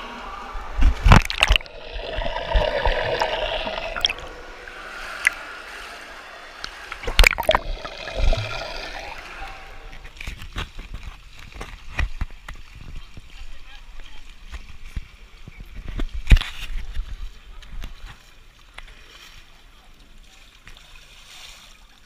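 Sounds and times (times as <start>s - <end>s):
water splashing and gurgling: 0.9s - 12.0s.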